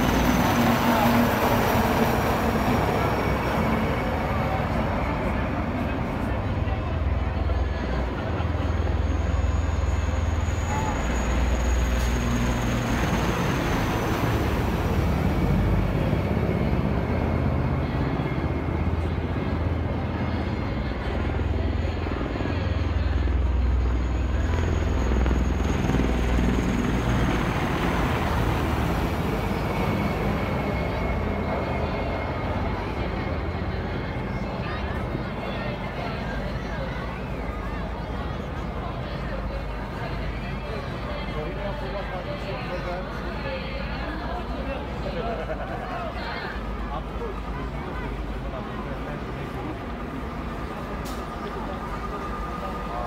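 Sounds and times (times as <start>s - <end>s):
engines low drone: 0.0s - 53.0s
high engine whine: 0.0s - 53.0s.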